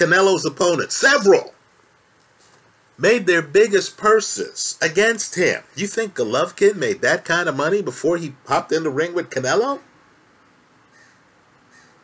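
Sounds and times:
faint short bird calls: 10.9 - 12.0.

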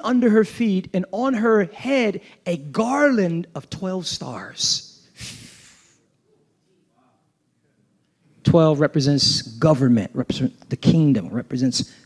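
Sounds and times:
man's sharp breath: 5.2 - 6.0.

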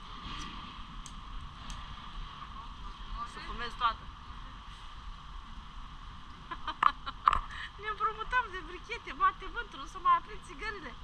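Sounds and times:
wind noise: 0.0 - 11.0.

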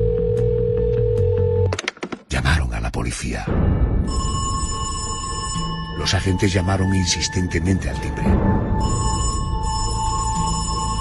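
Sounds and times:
background music: 0.0 - 11.0
electric doorbell ringing: 4.1 - 6.2, 8.8 - 11.0.

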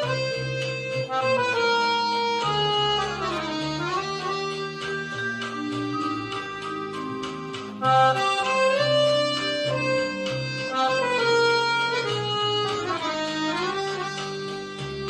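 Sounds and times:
accordion playing jazz: 0.0 - 15.0.

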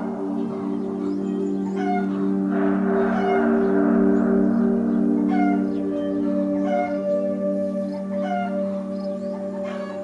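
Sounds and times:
drone of low tones: 0.0 - 10.0
high gliding cry: 0.0 - 10.0.

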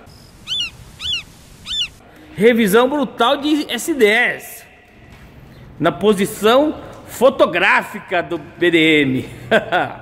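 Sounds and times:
eagle cries: 0.4 - 2.0.

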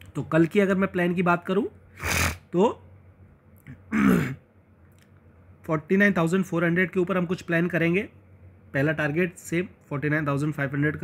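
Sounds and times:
man clearing his throat: 3.7 - 4.4.

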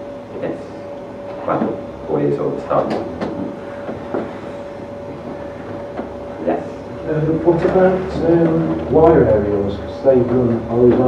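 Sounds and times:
thin steady whine: 0.0 - 11.0.

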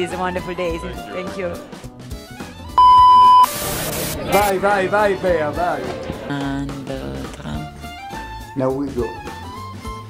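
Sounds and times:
electronic beep: 2.8 - 3.6
faint background music: 3.5 - 10.0.

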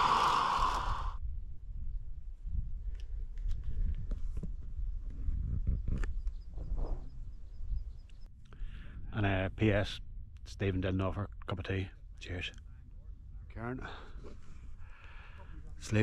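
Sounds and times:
wind buffeting microphone: 0.0 - 10.3.

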